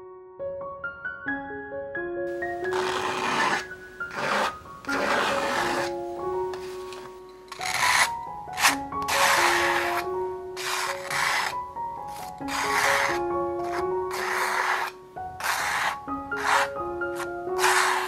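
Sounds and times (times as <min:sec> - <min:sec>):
gentle piano music: 0:00.0 - 0:18.0
palette knife scraping paint: 0:02.3 - 0:18.0.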